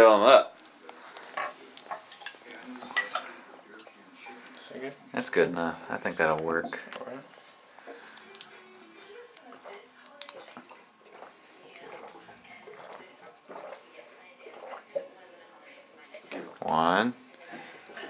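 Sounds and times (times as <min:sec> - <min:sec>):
faint murmured voices: 0:05.7 - 0:18.0.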